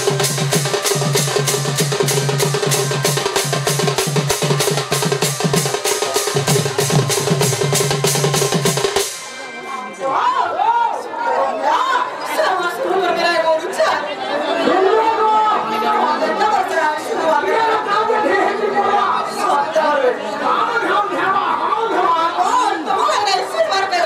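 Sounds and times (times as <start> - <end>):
people talking at once: 0.0 - 24.0.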